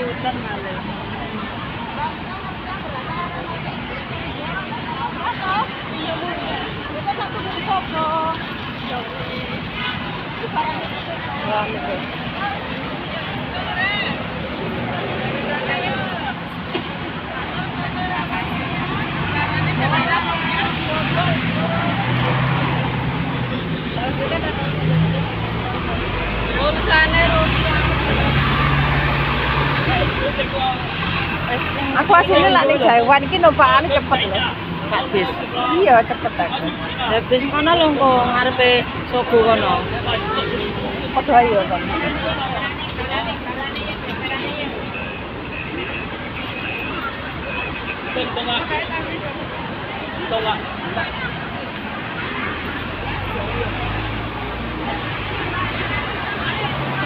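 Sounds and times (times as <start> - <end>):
bus engines humming: 0.0 - 57.0
crowd chatter: 0.0 - 57.0
steady traffic noise: 0.0 - 57.0.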